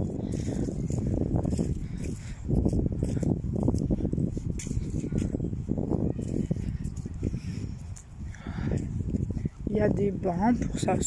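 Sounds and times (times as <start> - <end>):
footsteps on dry leaves: 0.0 - 9.8
low microphone rumble: 0.0 - 11.0.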